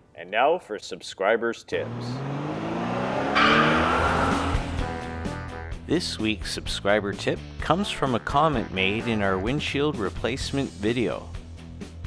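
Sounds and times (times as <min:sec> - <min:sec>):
car engine revving: 0:01.8 - 0:05.3
tyre screech: 0:03.0 - 0:04.9.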